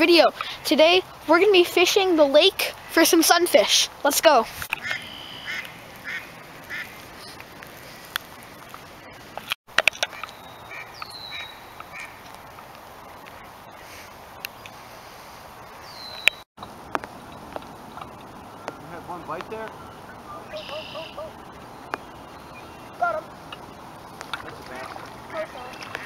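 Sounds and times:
light rain on a lake: 0.0s - 26.0s
short bird calls: 4.8s - 7.4s, 10.2s - 12.2s, 19.7s - 23.3s.

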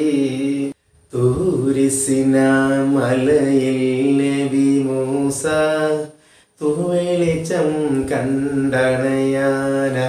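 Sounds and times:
man chanting sing-song: 0.0s - 10.0s.

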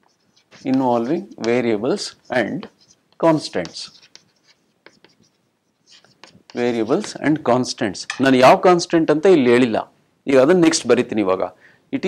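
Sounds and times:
chalk scratching on chalkboard: 0.0s - 7.3s.

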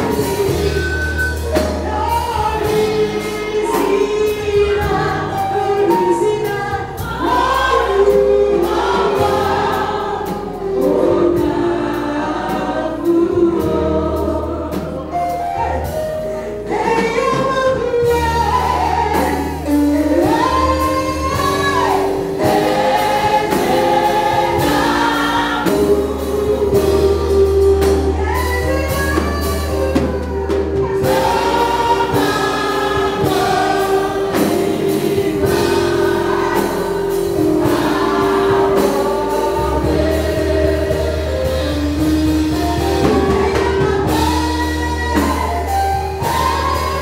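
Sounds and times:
congregation singing: 0.0s - 47.0s
deep bass notes: 0.0s - 47.0s
live band accompaniment: 0.0s - 47.0s.

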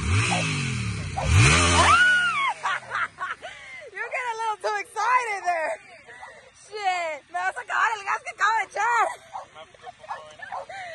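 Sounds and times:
motorcycle engine revving: 0.0s - 6.5s
child squealing: 1.2s - 2.4s.

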